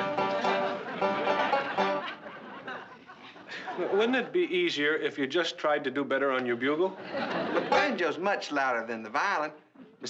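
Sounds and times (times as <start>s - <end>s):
banjo picked and strummed: 0.0s - 2.3s, 7.6s - 8.5s.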